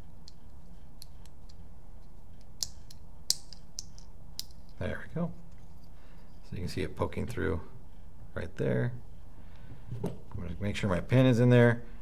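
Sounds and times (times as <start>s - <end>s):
small metal clicks and taps: 0.2s - 4.8s.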